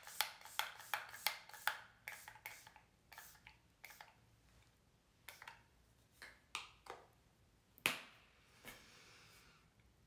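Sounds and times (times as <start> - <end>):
spray bottle spritzes: 0.0 - 4.2, 5.3 - 5.6.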